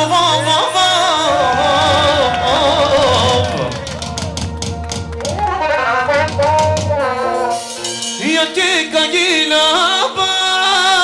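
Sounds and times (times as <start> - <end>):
rapid drum strokes: 1.2 - 8.4.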